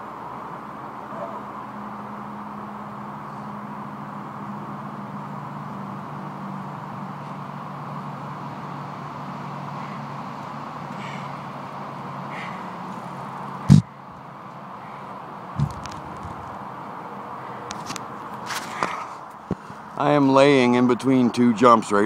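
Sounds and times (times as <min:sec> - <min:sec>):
faint calls: 0:10.9 - 0:11.5
low hum: 0:13.6 - 0:14.2, 0:15.6 - 0:16.6
sharp thump: 0:15.6 - 0:16.6.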